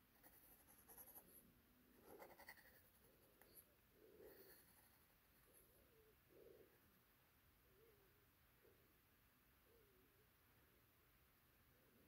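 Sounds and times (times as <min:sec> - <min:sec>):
pen nib scratching on paper: 0:00.1 - 0:01.4, 0:02.0 - 0:05.1.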